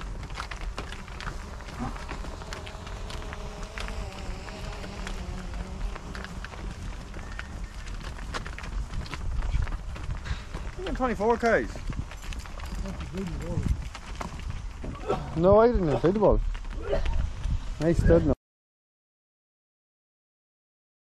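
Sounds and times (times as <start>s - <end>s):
cow hooves clattering on tarmac: 0.0s - 18.3s.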